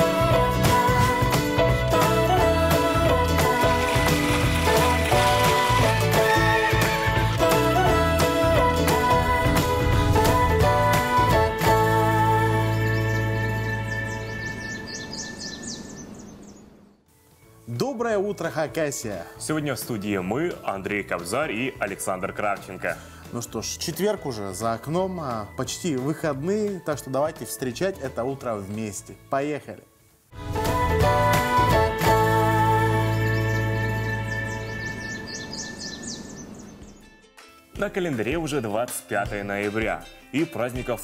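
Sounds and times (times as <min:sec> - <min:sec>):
high falling bird chirps: 0:12.6 - 0:17.0, 0:33.0 - 0:37.2.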